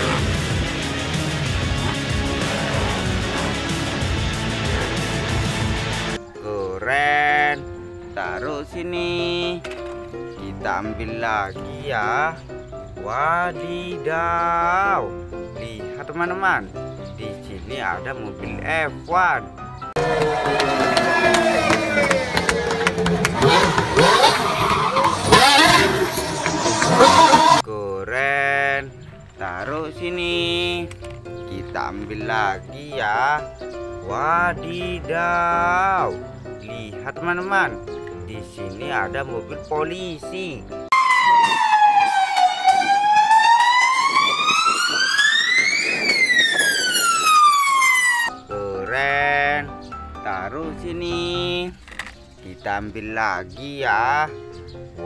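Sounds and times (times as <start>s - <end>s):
racing car engine revving: 0.0s - 6.2s, 20.0s - 27.6s
tyres squealing: 0.0s - 6.2s, 19.9s - 27.7s
police siren wailing: 20.0s - 27.6s, 40.9s - 48.3s.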